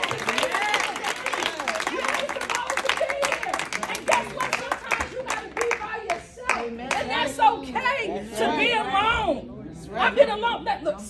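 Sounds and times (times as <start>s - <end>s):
audience clapping: 0.0s - 7.2s.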